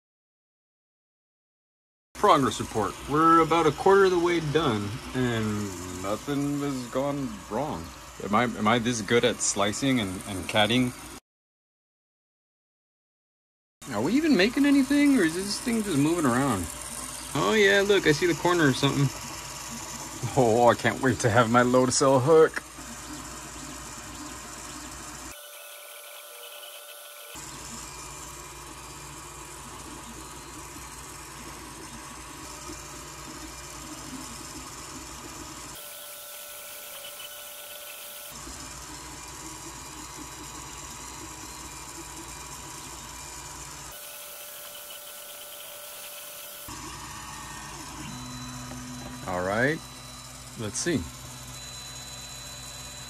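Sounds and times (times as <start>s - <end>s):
cooling fans whining: 2.2s - 11.2s, 13.8s - 53.0s
stepper motors whirring: 2.2s - 11.2s, 13.8s - 53.0s.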